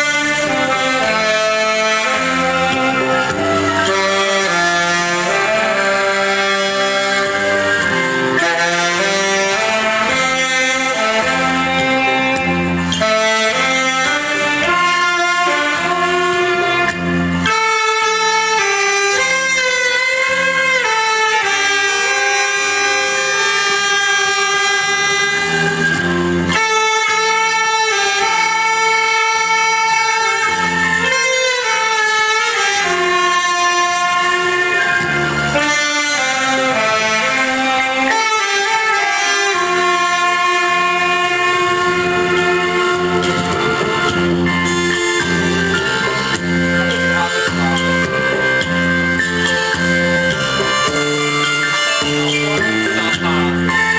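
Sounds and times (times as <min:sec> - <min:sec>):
backing track from loudspeaker: 0:00.0 - 0:53.9
saxophones playing slow melody: 0:00.0 - 0:53.9.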